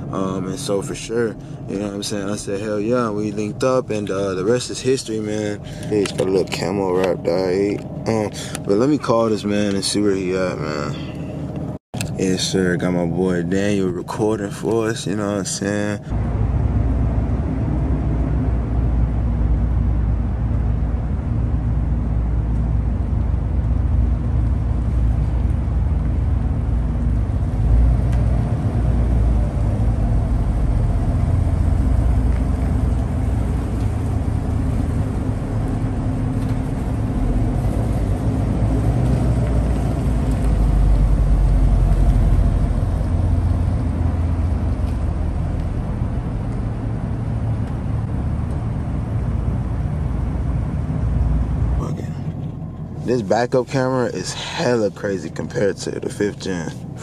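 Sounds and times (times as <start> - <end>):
car engine and exhaust rumbling: 0.0 - 57.0.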